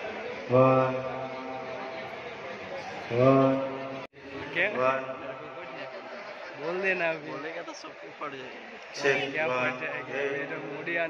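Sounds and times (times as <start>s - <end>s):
man speaking over public address: 0.0s - 2.0s, 2.8s - 11.0s.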